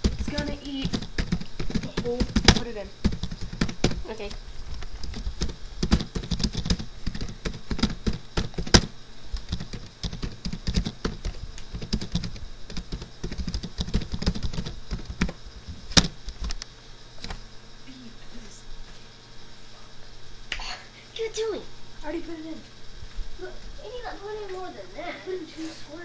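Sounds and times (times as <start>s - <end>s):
computer keyboard typing: 0.0s - 16.6s.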